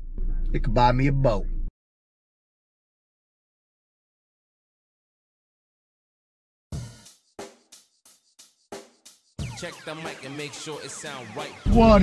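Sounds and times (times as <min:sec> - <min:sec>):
drum kit steady beat: 0:06.7 - 0:12.0.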